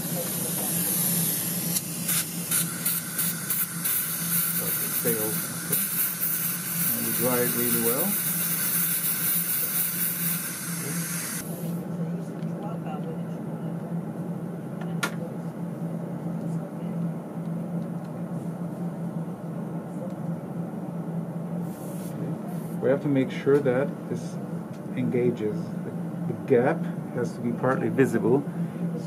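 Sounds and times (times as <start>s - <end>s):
air syringe hissing: 0.2s - 11.4s.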